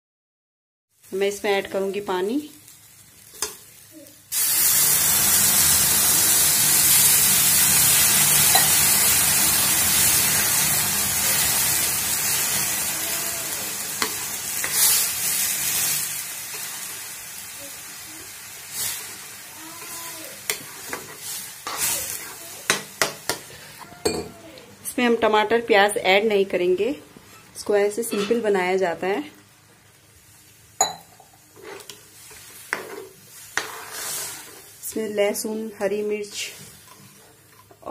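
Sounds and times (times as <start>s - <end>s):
water sizzling in hot oil: 0.9s - 23.7s, 29.8s - 37.9s
steel spoon scraping pan: 31.6s - 34.7s.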